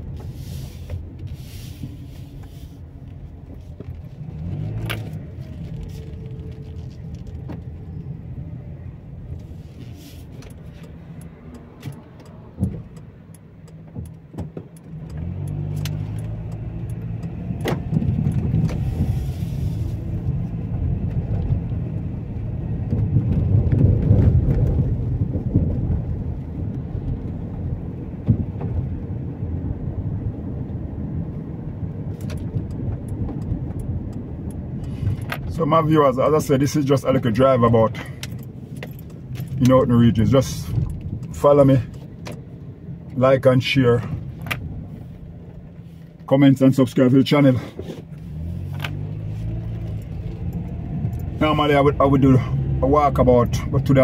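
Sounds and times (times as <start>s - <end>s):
car engine and road rumble: 0.0s - 54.0s
light clicks and rattles: 0.9s - 8.1s, 32.1s - 43.3s.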